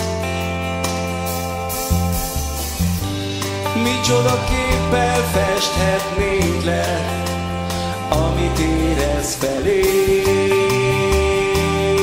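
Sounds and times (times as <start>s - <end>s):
sustained bass notes: 0.0s - 12.0s
worship band playing: 0.0s - 12.0s
man singing: 3.3s - 12.0s.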